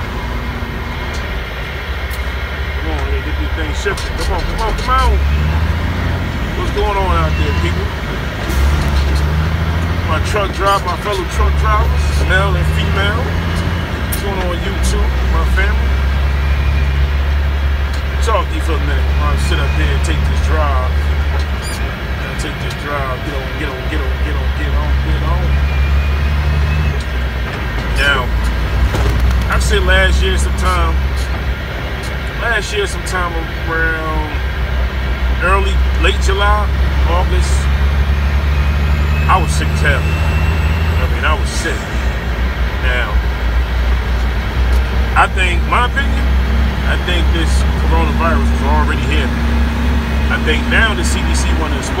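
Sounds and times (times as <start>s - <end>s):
truck engine and road noise: 0.0s - 52.0s.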